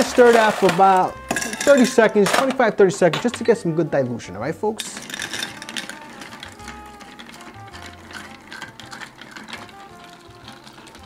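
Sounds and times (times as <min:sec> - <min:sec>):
spoon stirring ice in glass: 0:00.0 - 0:02.6, 0:04.8 - 0:11.0
soft background music: 0:00.0 - 0:11.0.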